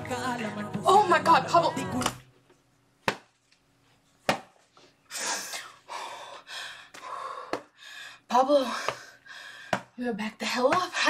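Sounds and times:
woman gasping and breathing heavily: 5.1s - 11.0s.

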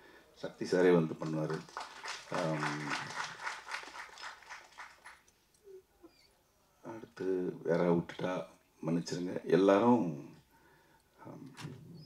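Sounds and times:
audience clapping: 1.0s - 5.3s.

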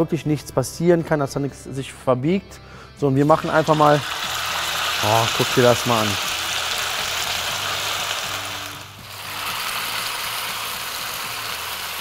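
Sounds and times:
batter sizzling in hot fat: 3.3s - 12.0s.

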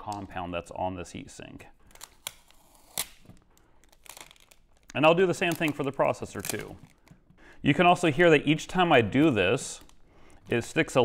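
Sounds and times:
tape snapping off metal: 1.9s - 4.6s.

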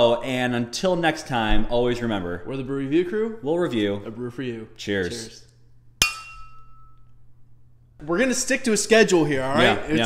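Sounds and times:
beer glasses clinking: 6.0s - 7.1s.

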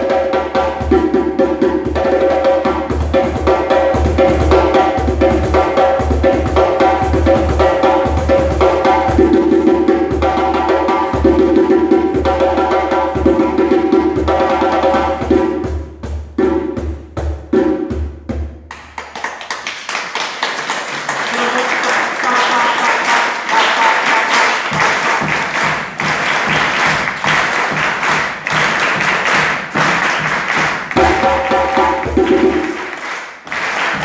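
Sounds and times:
fast djembe drum strokes: 0.0s - 18.8s, 22.4s - 33.0s.

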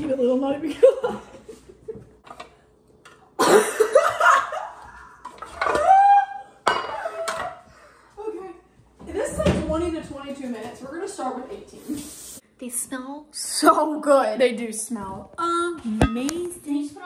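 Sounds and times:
women laughing and shrieking: 3.6s - 7.8s.

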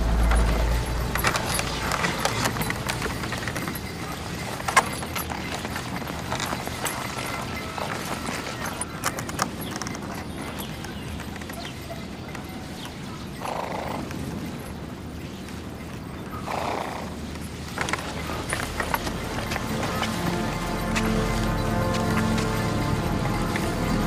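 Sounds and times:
horse calling: 0.0s - 14.6s, 16.2s - 24.0s
clip-clop hoofbeats in snow: 0.0s - 24.0s.

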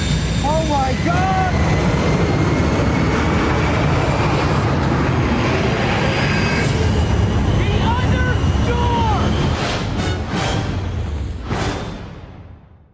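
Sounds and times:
airplane engines at takeoff: 0.0s - 12.9s
man shouting: 7.6s - 9.3s.

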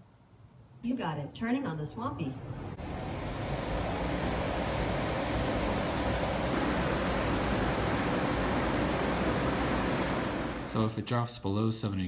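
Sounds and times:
evaporative cooler fan rush: 2.2s - 11.0s.

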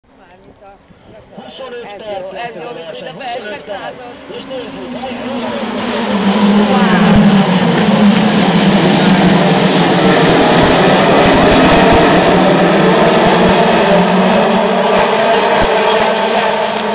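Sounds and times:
race car engines accelerating: 3.4s - 16.9s.

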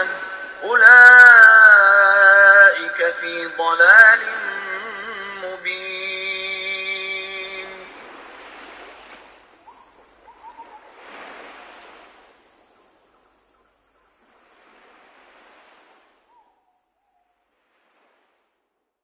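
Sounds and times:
surf washing ashore: 0.0s - 16.4s, 17.5s - 18.6s
faint bird calls: 7.4s - 14.9s, 16.2s - 17.6s.

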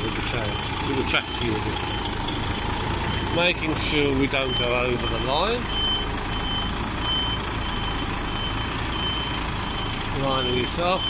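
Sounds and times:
diesel engine idling: 0.0s - 11.0s
reversing alarm beeping: 0.0s - 11.0s.

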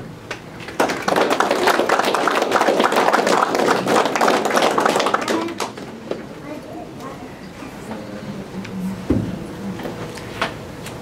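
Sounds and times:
audience applauding: 0.6s - 5.9s.

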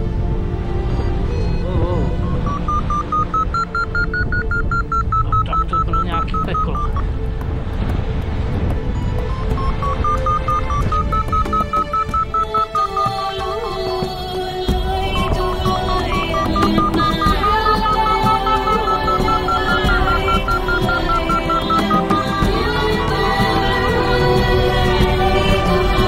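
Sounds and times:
variometer quick beeps: 1.0s - 7.1s, 8.9s - 13.5s, 15.9s - 22.4s.

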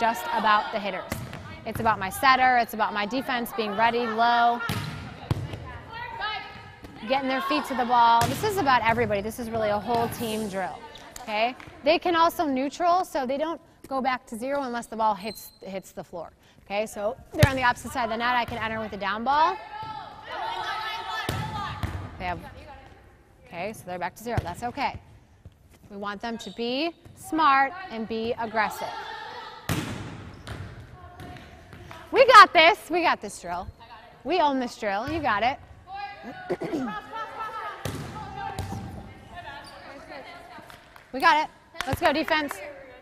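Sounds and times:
volleyball being struck: 29.7s - 31.4s
volleyball smacks: 29.7s - 32.1s, 37.8s - 39.0s.

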